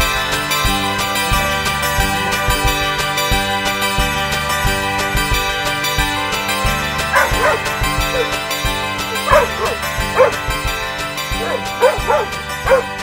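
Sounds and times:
background music: 0.0 - 13.0
dog yipping and barking: 7.1 - 8.4, 9.1 - 10.4, 11.3 - 13.0.

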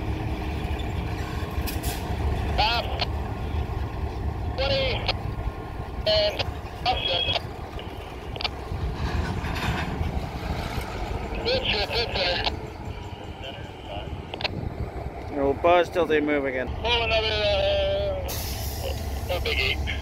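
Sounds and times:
diesel locomotive engines rumbling: 0.0 - 20.0.

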